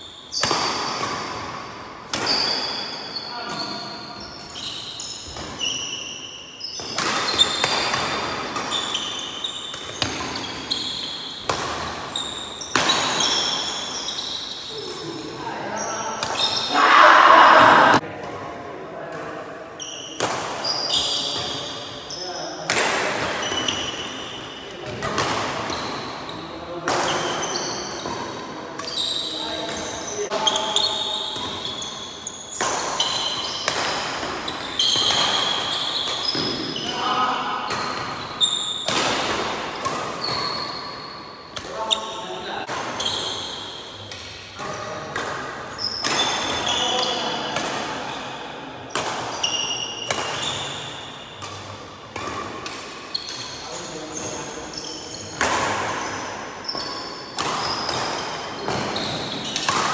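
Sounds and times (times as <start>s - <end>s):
rackets hitting shuttlecock: 0.3s - 2.7s, 6.6s - 14.3s, 22.7s - 26.2s, 26.8s - 48.2s, 48.9s - 59.9s
shoes squeaking on wooden floor: 2.3s - 14.9s, 28.8s - 37.2s.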